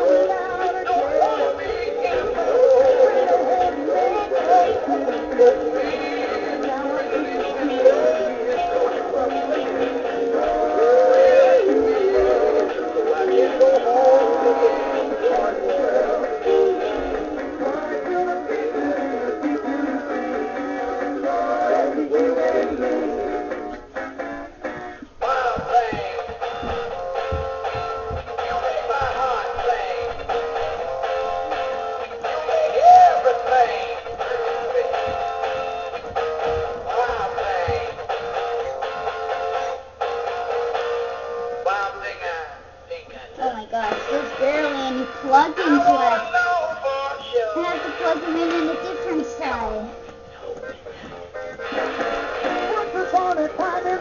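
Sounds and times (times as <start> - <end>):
toy singing through small speaker: 0.0 - 23.2.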